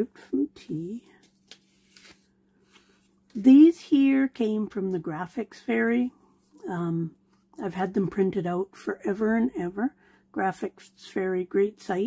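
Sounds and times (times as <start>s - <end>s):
paper rustling: 1.2s - 3.2s.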